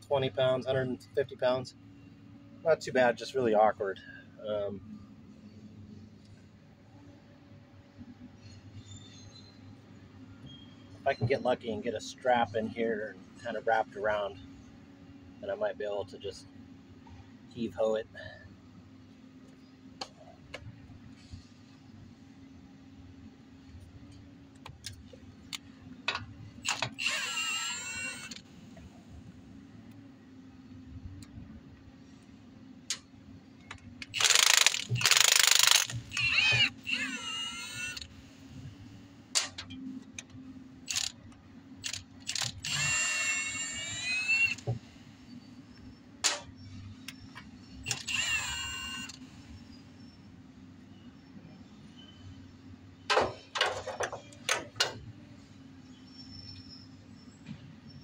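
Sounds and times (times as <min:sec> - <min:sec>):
impact driver whining: 0:34.1 - 0:38.1, 0:40.9 - 0:41.2, 0:41.8 - 0:44.8, 0:47.8 - 0:49.2.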